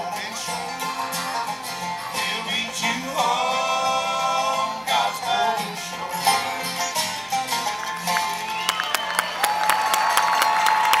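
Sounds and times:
audience applauding and cheering: 7.3s - 11.0s.

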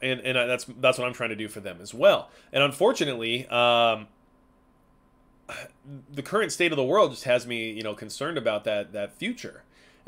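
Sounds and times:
man sharp intake of breath: 2.3s - 2.6s, 9.6s - 10.0s.

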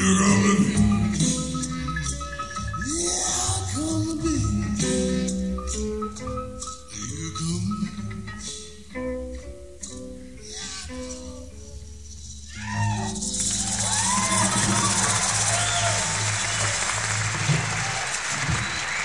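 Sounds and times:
live band playing: 0.0s - 8.8s, 12.7s - 19.0s
whistles and shouts: 12.5s - 17.0s, 18.5s - 19.0s
audience cheering and applause: 12.5s - 19.0s.

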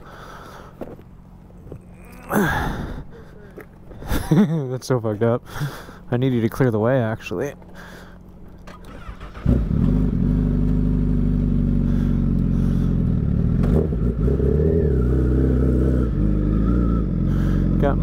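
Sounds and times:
motorcycle engine starting and idling: 8.4s - 18.0s.

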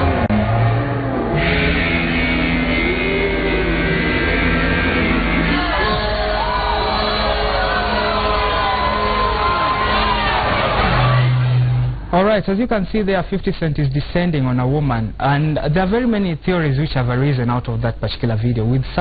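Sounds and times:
crowd shouting and singing: 1.5s - 12.1s.

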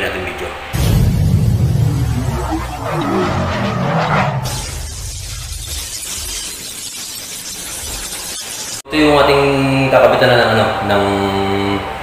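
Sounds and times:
dense noisy rush: 0.7s - 6.1s
low rumble: 0.8s - 5.6s.

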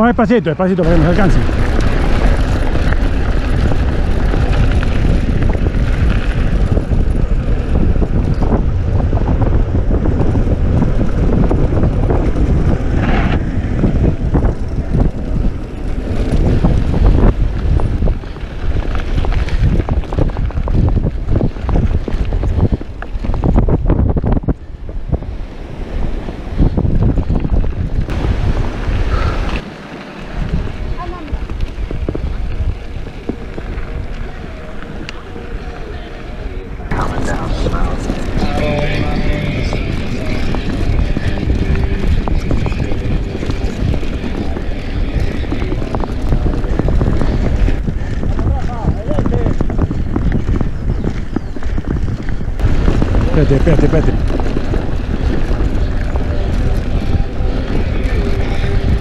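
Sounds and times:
bike tyres on gravel: 0.0s - 59.0s
wind buffeting microphone: 0.0s - 59.0s
bike knocks and rattles: 37.0s - 59.0s.

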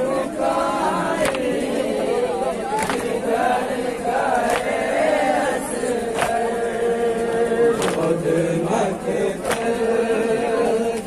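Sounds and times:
men chanting in unison: 0.0s - 11.0s
hand slapping chest: 2.8s - 3.1s.

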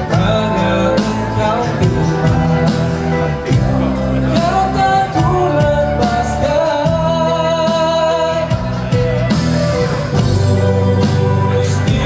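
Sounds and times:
live band with singing: 0.0s - 12.0s.

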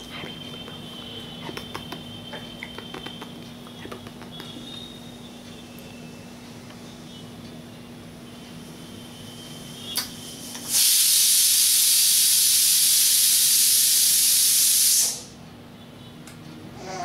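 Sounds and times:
loud steady hiss: 8.6s - 15.4s.

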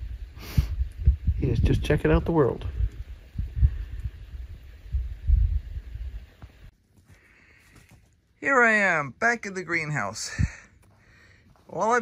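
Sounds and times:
wind buffeting microphone: 0.0s - 6.7s.

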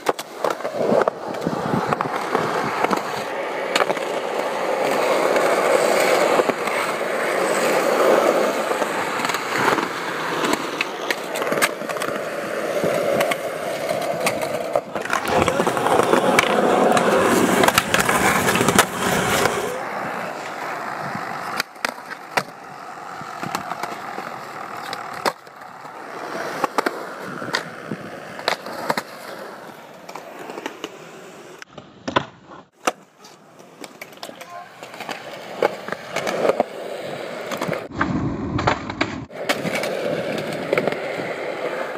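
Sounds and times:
skateboard hitting ground: 0.0s - 31.0s, 31.6s - 36.8s, 37.4s - 41.9s
skateboard wheels rolling on concrete: 0.0s - 41.9s.

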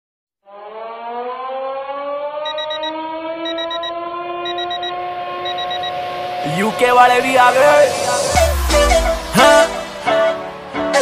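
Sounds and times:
siren-like wavering tone: 0.5s - 9.7s
quick high beeps: 3.5s - 3.9s, 4.5s - 6.0s.

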